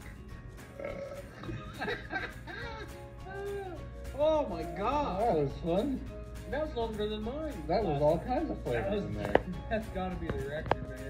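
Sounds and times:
background music: 0.0s - 11.0s
man burping: 0.7s - 1.8s.

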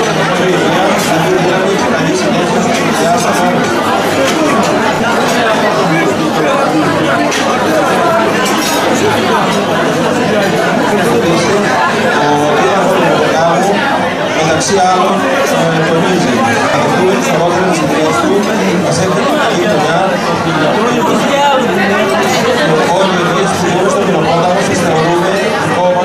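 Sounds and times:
crowd chatter in a large hall: 0.0s - 26.0s.

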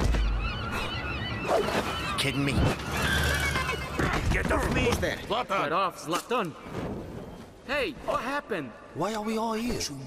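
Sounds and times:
gulls squawking: 0.0s - 4.8s.

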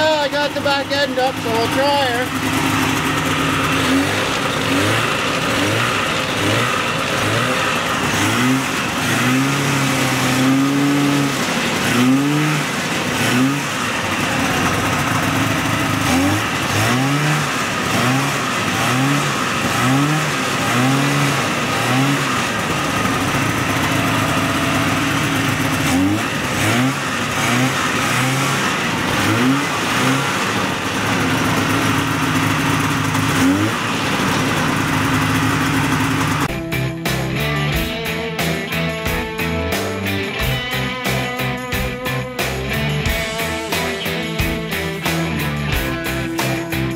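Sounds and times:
two-stroke snowmobile engine revving: 0.0s - 46.9s.

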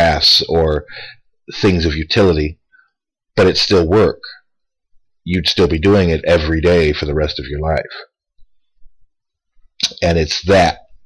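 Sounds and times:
man talking: 0.0s - 2.6s, 3.4s - 4.5s, 5.2s - 8.2s, 9.8s - 11.0s.

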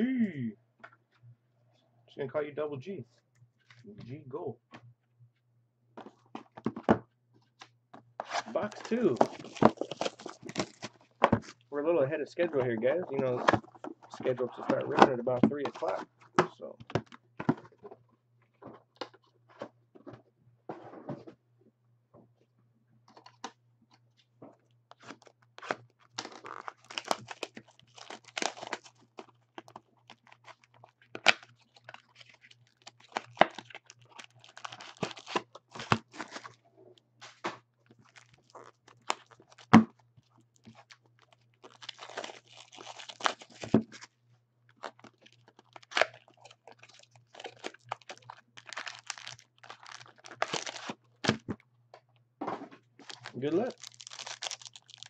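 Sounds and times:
box and card packs handled: 6.0s - 11.7s, 12.3s - 21.4s, 23.1s - 36.6s, 37.2s - 51.7s, 52.4s - 55.0s
plastic wrap tearing and crinkling: 8.3s - 11.0s, 25.0s - 36.6s, 37.9s - 39.7s, 40.6s - 44.1s, 44.8s - 51.5s, 53.0s - 55.0s.

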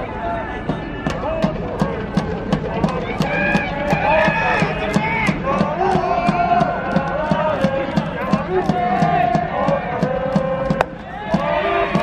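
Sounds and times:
steady drum beat: 0.7s - 12.0s
crowd chanting: 3.0s - 12.0s.

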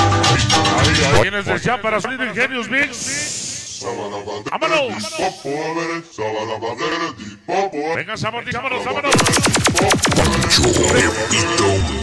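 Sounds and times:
man shouting over sound system: 1.1s - 3.4s, 4.5s - 5.5s, 8.2s - 11.8s.

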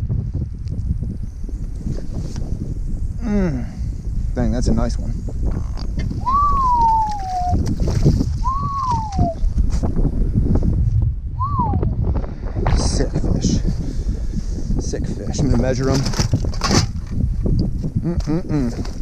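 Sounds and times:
wind buffeting microphone: 0.0s - 19.0s
rising and falling whistle tones: 6.2s - 7.6s, 8.4s - 9.4s, 11.4s - 11.9s.

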